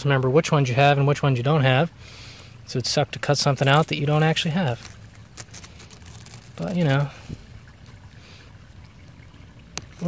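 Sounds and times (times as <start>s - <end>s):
knife cutting through fabric: 3.6s - 7.1s.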